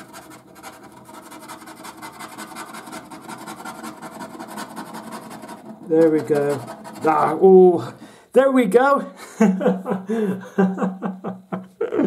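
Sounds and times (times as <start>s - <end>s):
coin scraping scratchcard: 0.0s - 7.5s.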